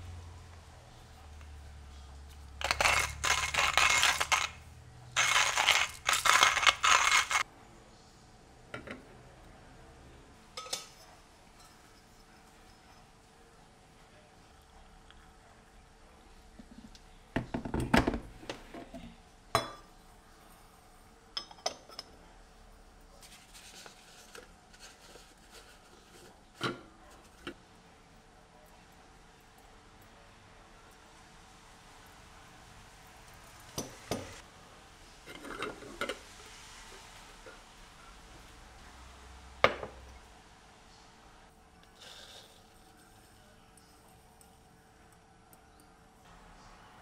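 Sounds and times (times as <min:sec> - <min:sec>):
hand coffee grinder rattling: 0:02.6 - 0:04.6, 0:05.2 - 0:07.4
kettle knocking on stone counter: 0:17.4 - 0:18.2, 0:39.7 - 0:40.0.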